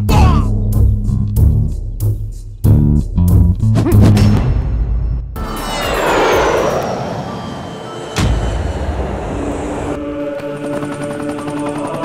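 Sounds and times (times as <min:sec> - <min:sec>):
jet airliner passing overhead: 0:05.4 - 0:10.5
low thud hit: 0:08.1 - 0:10.0.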